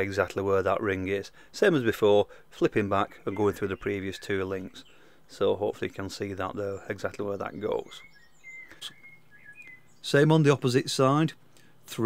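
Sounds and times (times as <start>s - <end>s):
faint high-pitched chirps: 2.3s - 10.4s.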